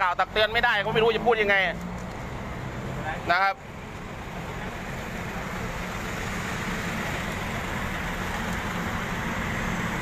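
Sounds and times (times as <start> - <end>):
engine rumble: 0.0 - 10.0
traffic: 0.0 - 10.0.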